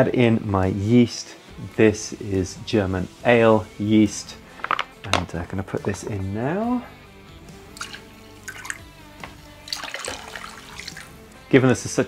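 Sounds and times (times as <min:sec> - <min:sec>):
soft background music: 0:00.0 - 0:12.0
liquid trickling and splashing: 0:07.7 - 0:09.0, 0:09.6 - 0:11.2.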